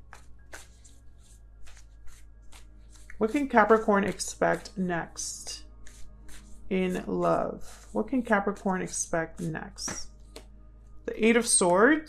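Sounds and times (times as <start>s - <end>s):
cards being shuffled: 0.0s - 4.7s, 5.9s - 7.0s.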